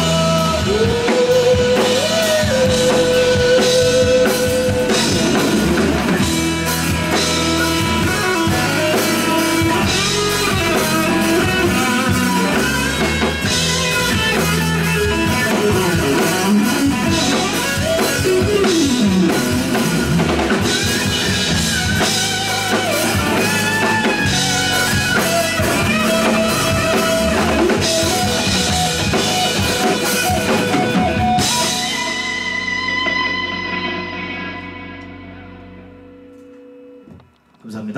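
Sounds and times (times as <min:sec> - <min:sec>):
drum kit: 0:00.0 - 0:37.2
live rock band playing: 0:00.0 - 0:37.2.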